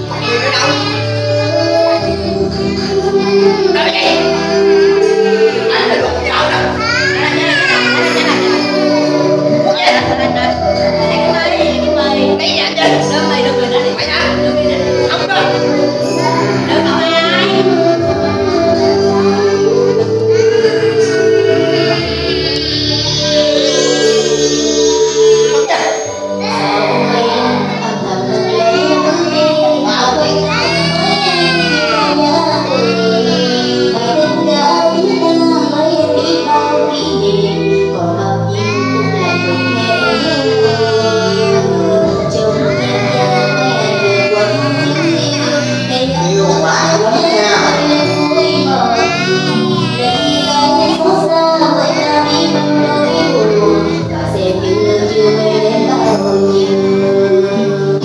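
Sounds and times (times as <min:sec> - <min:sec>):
person singing into a microphone: 0:00.0 - 0:12.3, 0:12.9 - 0:58.0
karaoke backing track: 0:00.0 - 0:58.0.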